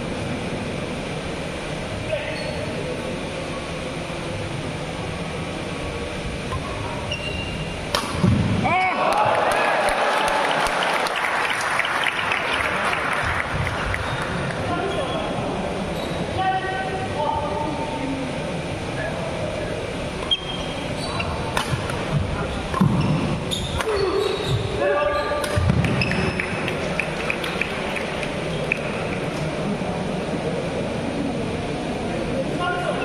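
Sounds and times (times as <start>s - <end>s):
shoes squeaking on court: 6.6s - 7.7s, 20.2s - 21.8s, 22.4s - 26.6s
racket hitting shuttlecock: 7.9s - 8.5s, 21.5s - 24.0s, 25.4s - 26.4s
spectators cheering: 8.6s - 14.5s.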